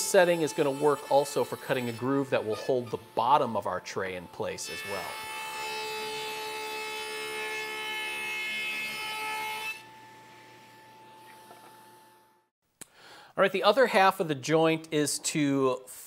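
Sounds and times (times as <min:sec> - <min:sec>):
table saw cutting wood: 0:00.0 - 0:12.4.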